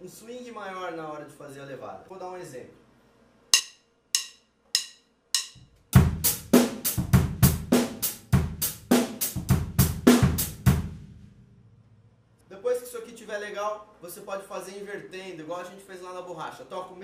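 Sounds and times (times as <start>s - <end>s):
drumstick clicks: 3.6s - 5.7s
drum kit groove: 3.6s - 11.2s.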